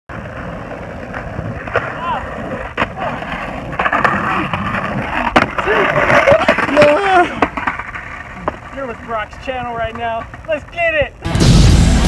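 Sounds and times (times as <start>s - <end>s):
skateboard clacks: 0.1s - 11.3s
skateboard wheels rolling on concrete: 0.1s - 12.0s.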